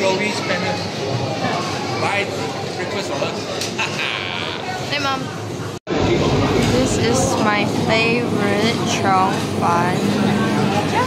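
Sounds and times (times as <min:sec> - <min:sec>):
restaurant background chatter: 0:00.0 - 0:11.0.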